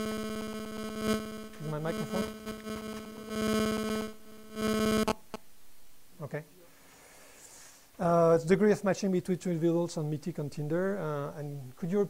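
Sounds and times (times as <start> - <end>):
electrical interference buzz: 0.0 - 6.4
clicks: 2.4 - 3.3, 4.9 - 5.4.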